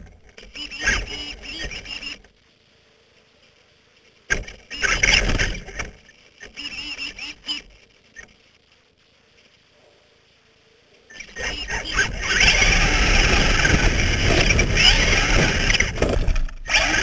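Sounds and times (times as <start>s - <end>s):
electric motor whining: 0.0s - 2.3s, 4.6s - 7.7s, 11.1s - 17.0s.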